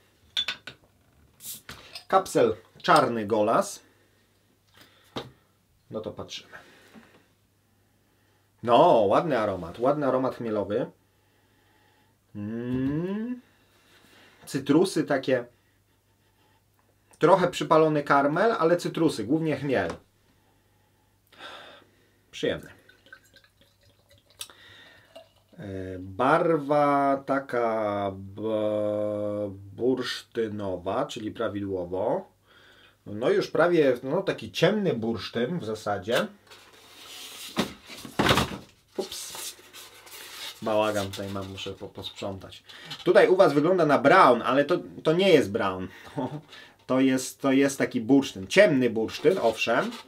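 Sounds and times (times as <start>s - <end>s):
man talking: 1.5s - 3.9s, 5.9s - 6.6s, 8.6s - 11.0s, 12.3s - 13.4s, 14.5s - 15.5s, 17.2s - 20.0s, 22.4s - 22.8s, 25.6s - 32.3s, 33.0s - 36.4s, 40.6s - 50.0s
beer trickling into glass: 22.7s - 25.6s.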